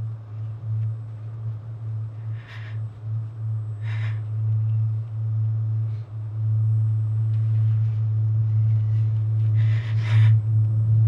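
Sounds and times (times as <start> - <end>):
low-pitched hum: 0.0 - 11.0
soft hiss: 0.0 - 11.0.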